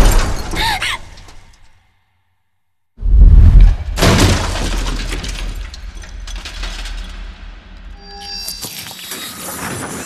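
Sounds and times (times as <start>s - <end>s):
deep boom: 3.0s - 4.8s
crackling debris: 3.2s - 10.0s
shattering crash: 3.8s - 8.0s.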